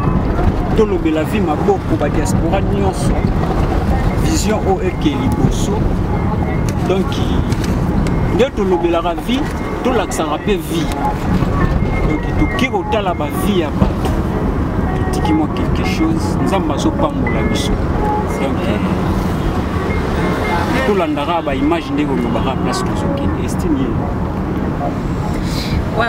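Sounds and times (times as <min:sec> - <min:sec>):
car cabin low rumble: 0:00.0 - 0:26.0
voices talking: 0:00.0 - 0:26.0.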